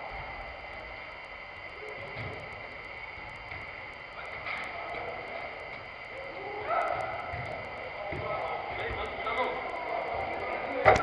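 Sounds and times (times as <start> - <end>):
sports hall background: 0.0 - 11.0.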